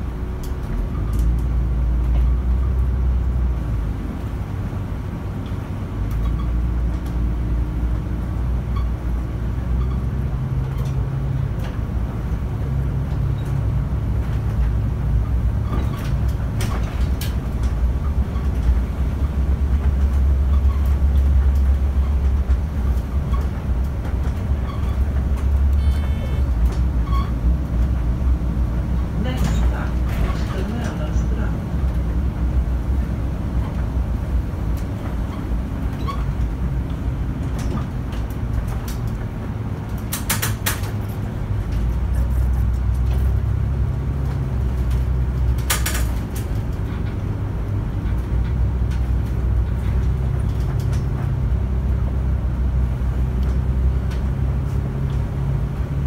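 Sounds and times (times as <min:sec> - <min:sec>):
bus engine rumble: 0:00.0 - 0:56.0
interior rattles and clicks: 0:00.0 - 0:56.0.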